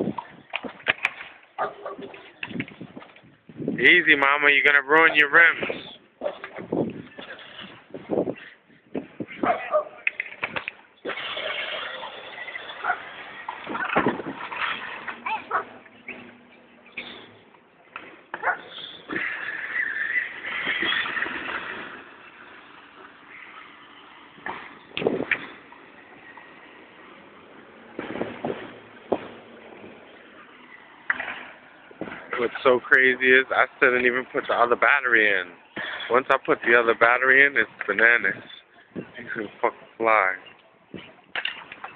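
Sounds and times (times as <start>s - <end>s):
plastic wheels on asphalt: 0.0s - 41.9s.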